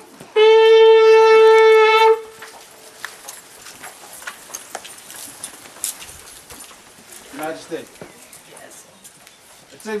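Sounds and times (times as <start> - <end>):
loud horn blast: 0.4 - 2.3.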